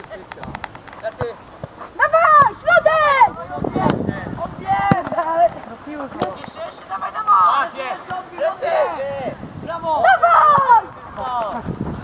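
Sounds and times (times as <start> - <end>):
people shouting calls: 2.0 - 11.6.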